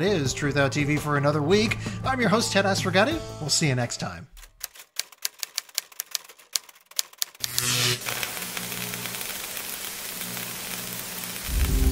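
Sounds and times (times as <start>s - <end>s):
typewriter key clicks: 4.4s - 7.4s
static-like noise: 7.5s - 11.9s
low hum: 11.4s - 11.9s.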